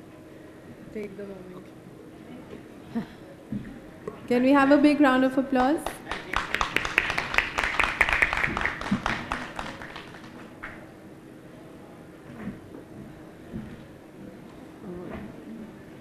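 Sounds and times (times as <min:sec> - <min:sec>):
small crowd clapping: 0:05.3 - 0:10.8.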